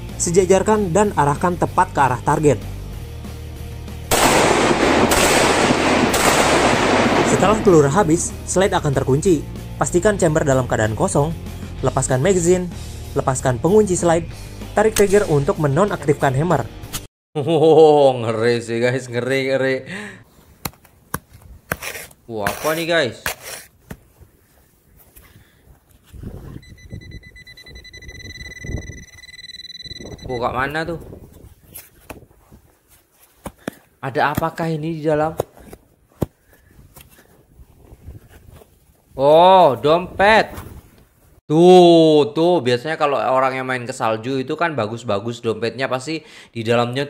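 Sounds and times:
pistol firing rapidly: 0:04.1 - 0:07.6
digging tool scraping frozen soil: 0:21.7 - 0:23.8
metal detector high steady tone: 0:26.5 - 0:30.9.

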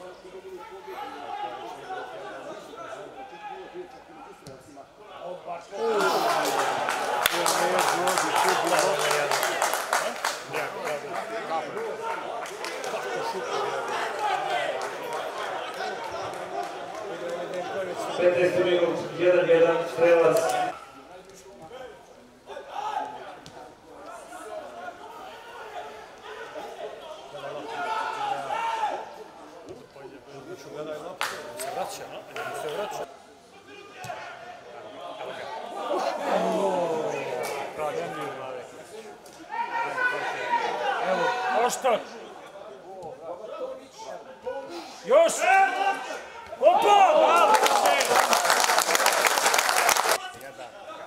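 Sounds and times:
players shouting: 0:05.1 - 0:09.4, 0:11.7 - 0:20.8, 0:24.0 - 0:29.2, 0:32.3 - 0:38.4, 0:39.4 - 0:42.4, 0:44.5 - 0:51.0.

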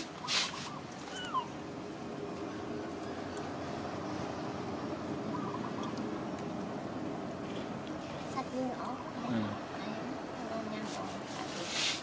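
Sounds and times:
young macaque squeaking and chirping: 0:00.2 - 0:01.6.

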